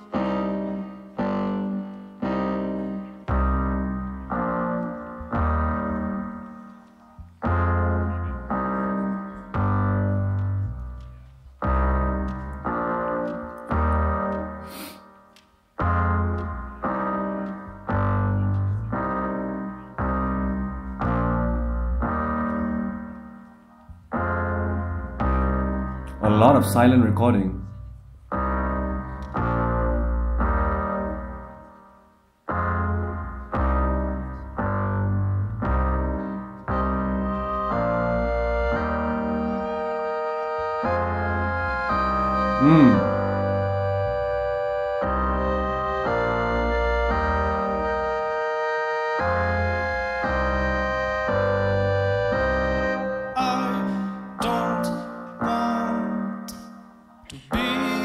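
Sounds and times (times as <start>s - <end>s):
looped keyboard chords: 0.0s - 58.0s
deep bass: 7.2s - 14.6s, 15.8s - 23.0s, 32.5s - 39.8s, 40.8s - 48.0s.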